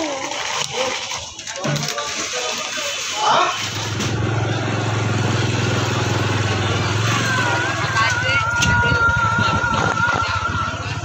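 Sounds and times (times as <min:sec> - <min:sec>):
motorbike engine running: 0:03.8 - 0:11.0.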